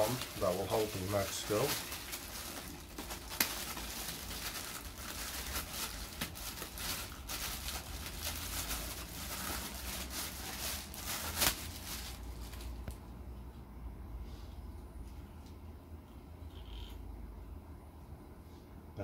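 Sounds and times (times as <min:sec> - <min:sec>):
plastic bag crinkling: 0:00.0 - 0:12.9.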